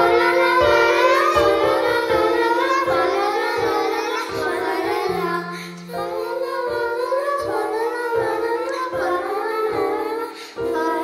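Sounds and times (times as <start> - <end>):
children singing a carol: 0.0 - 11.0
piano playing held notes: 0.0 - 11.0.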